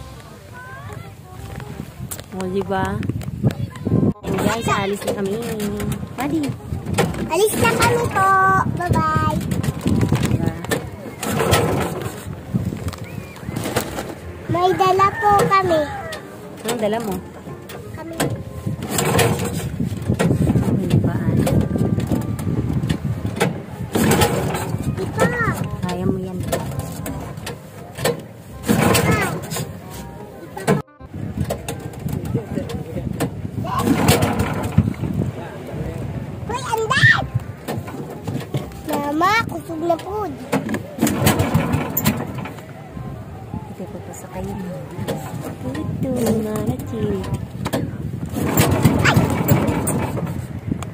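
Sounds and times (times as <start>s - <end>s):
voices: 0.0s - 19.7s, 20.4s - 50.8s
boat engine chugging: 0.0s - 50.9s.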